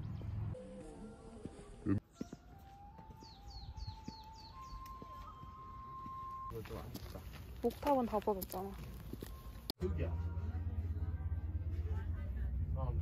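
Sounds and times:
small birds chirping: 0.0s - 5.4s.

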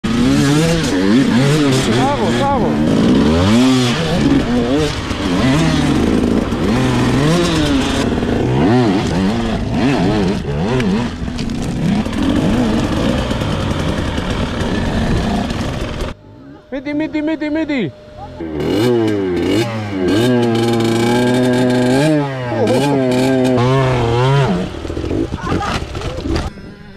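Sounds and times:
dirt bike engines revving: 0.0s - 26.9s.

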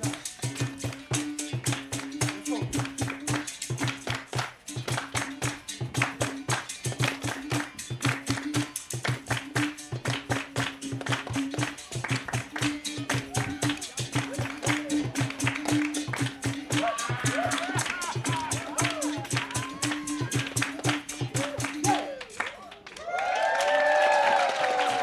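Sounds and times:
hand drum: 0.0s - 22.4s
voices singing: 0.0s - 22.6s
hand claps: 0.0s - 25.0s.

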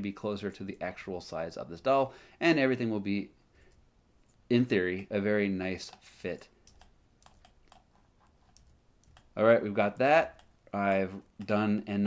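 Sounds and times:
computer keyboard clicks: 6.7s - 7.9s, 8.5s - 9.3s.

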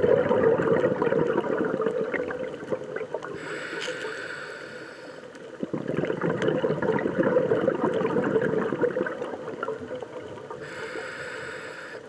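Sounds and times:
diver's bubbles gurgling: 0.0s - 3.4s, 5.4s - 10.7s
regulator breath hiss: 3.4s - 5.4s, 10.6s - 12.0s.

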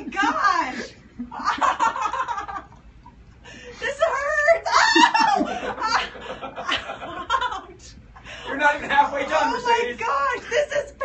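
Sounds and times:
woman laughing: 0.0s - 2.7s, 3.8s - 8.0s.

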